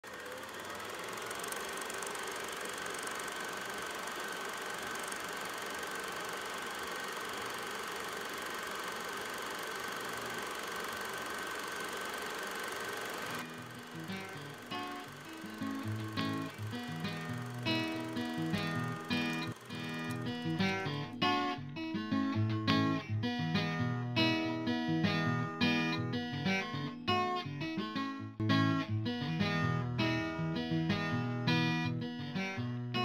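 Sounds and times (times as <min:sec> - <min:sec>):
film projector whirring and clattering: 0:00.0 - 0:21.4
acoustic guitar plucked notes: 0:13.4 - 0:33.0.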